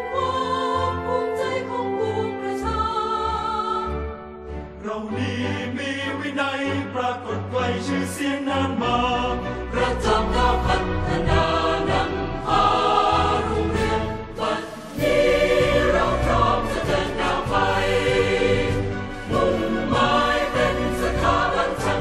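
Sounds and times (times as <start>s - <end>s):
choir singing with instruments: 0.0s - 22.0s.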